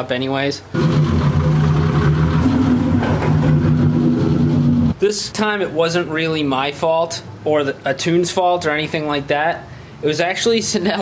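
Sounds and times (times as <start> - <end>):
car engine idling: 0.8 - 5.0.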